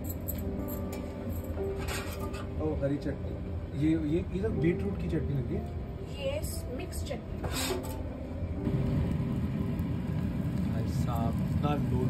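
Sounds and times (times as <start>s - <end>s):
kitchen rumble: 0.0s - 2.6s.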